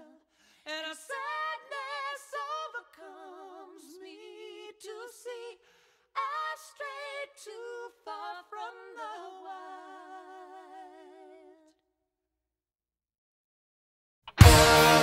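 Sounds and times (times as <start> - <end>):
person singing with vibrato: 0.0 - 5.6.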